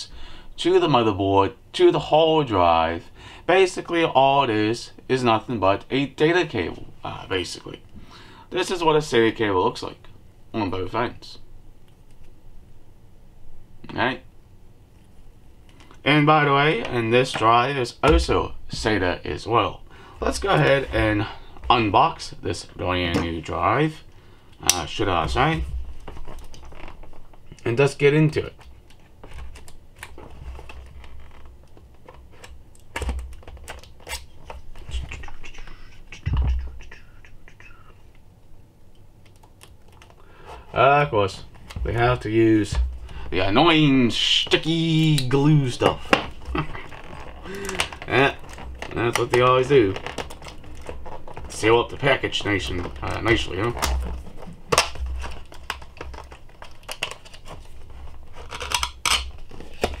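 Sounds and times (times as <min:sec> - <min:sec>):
dull thumps: 0:41.6 - 0:43.6.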